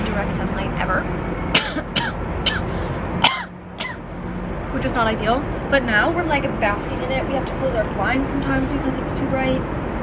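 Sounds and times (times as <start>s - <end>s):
woman coughing: 1.6s - 4.0s.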